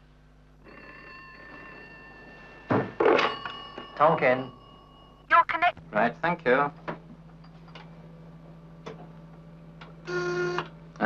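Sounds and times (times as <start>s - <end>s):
low steady hum: 0.0s - 11.0s
telephone buzz: 10.0s - 10.7s.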